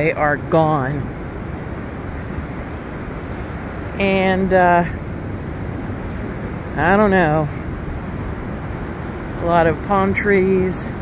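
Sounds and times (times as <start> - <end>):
ocean surf: 0.0 - 11.0
wind: 0.0 - 11.0.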